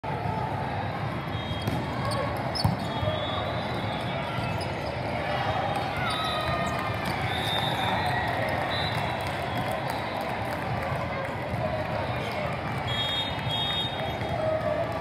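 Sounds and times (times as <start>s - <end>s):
chatter of many voices: 0.0s - 15.0s
sneakers squeaking on court: 1.5s - 3.8s
volleyballs hit and bouncing: 1.6s - 3.0s.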